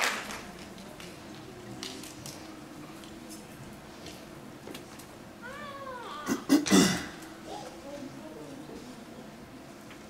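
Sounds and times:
loud coughing: 0:06.2 - 0:07.2.

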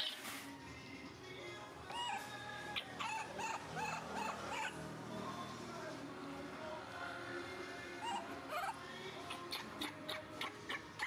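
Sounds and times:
baby monkey whimpering: 0:01.9 - 0:04.8, 0:08.0 - 0:11.0.

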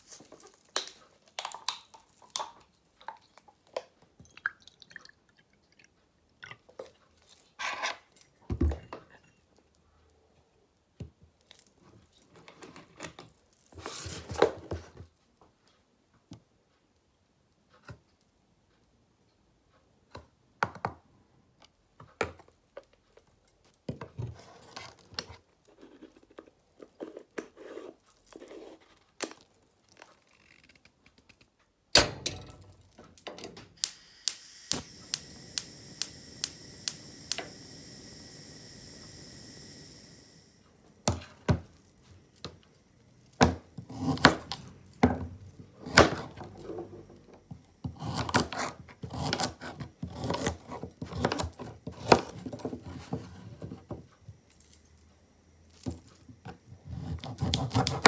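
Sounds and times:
gas hob igniter clicking: 0:33.2 - 0:40.4
gas burner hissing: 0:33.7 - 0:43.6.

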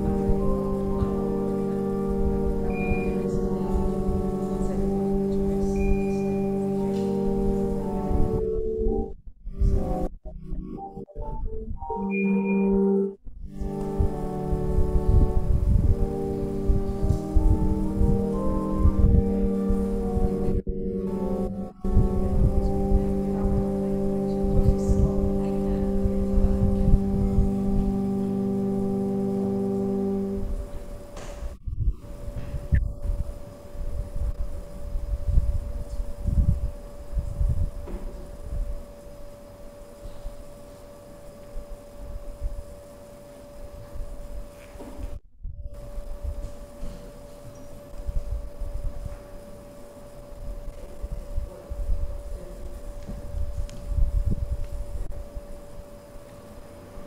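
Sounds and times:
held musical chord: 0:00.0 - 0:35.4
low rumbling room noise: 0:00.0 - 0:57.0
steady hum: 0:00.0 - 0:57.0.

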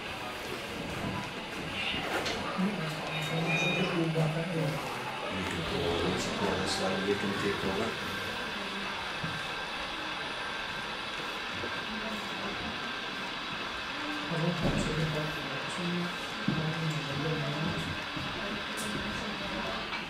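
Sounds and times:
model train running on track: 0:05.1 - 0:20.0.

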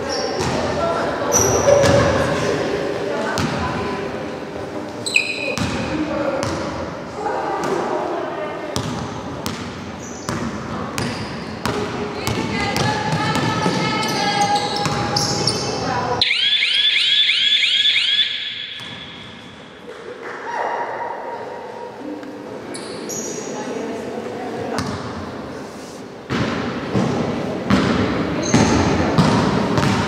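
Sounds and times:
players' voices echoing: 0:00.0 - 0:30.0
basketball bouncing on wooden floor: 0:18.7 - 0:19.4, 0:26.4 - 0:30.0.

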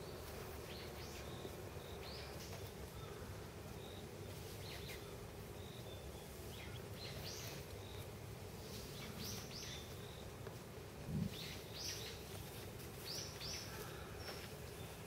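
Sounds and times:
birds chirping: 0:00.0 - 0:10.4, 0:11.0 - 0:12.3
low outdoor background hum: 0:00.0 - 0:15.0.

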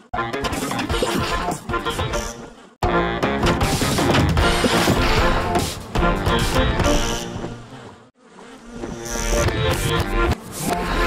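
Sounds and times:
cartoon bee buzzing: 0:04.4 - 0:11.0.

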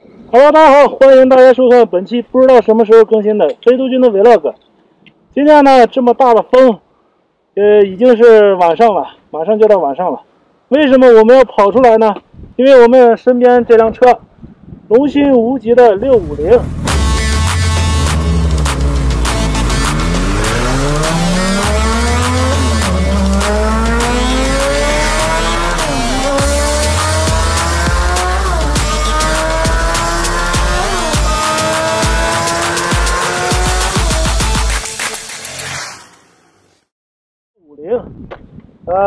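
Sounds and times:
motorcycle engine accelerating: 0:16.0 - 0:35.0
music with heavy bass: 0:16.0 - 0:35.4.

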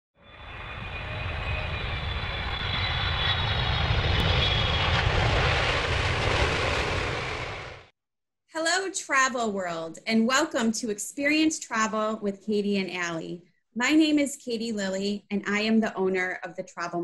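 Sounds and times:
airplane engine roar: 0:00.2 - 0:07.9.

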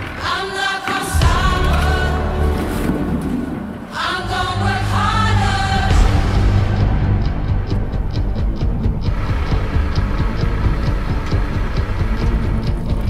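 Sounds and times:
background music with heavy throb: 0:01.0 - 0:13.0.

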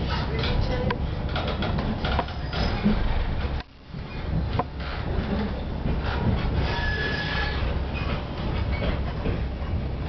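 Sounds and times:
train wheels rumbling on track: 0:00.0 - 0:10.0
faint high wheel squeal: 0:06.6 - 0:09.0.

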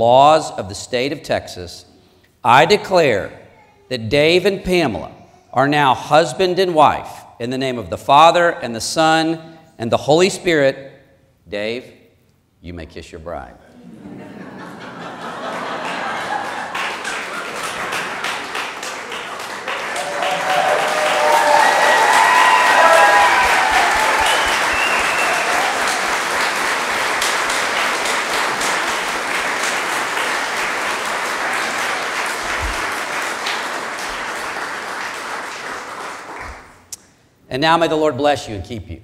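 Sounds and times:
congregation applauding: 0:15.0 - 0:36.9
voices cheering: 0:16.0 - 0:30.3.

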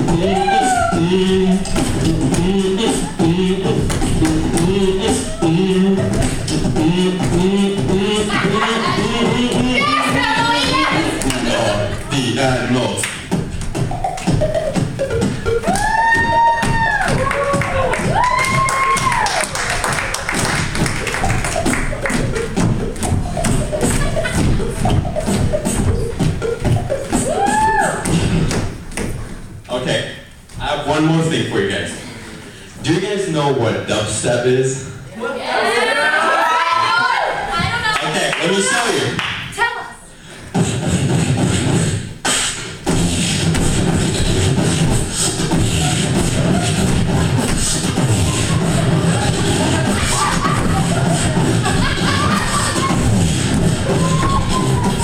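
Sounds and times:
beatboxing beat: 0:00.0 - 0:29.3, 0:40.2 - 0:55.0.

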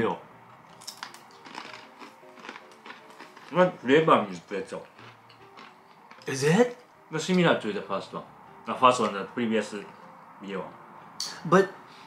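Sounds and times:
faint background music: 0:00.0 - 0:12.0
pretzel crunching: 0:00.9 - 0:06.3.

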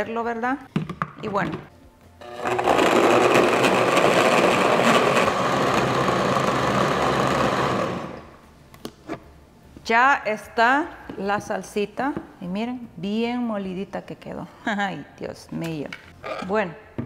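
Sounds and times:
blender running: 0:02.2 - 0:08.2.

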